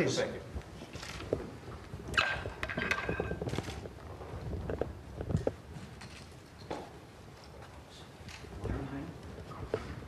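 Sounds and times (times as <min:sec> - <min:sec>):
camera shutters clicking: 0:00.9 - 0:01.3, 0:03.4 - 0:03.8.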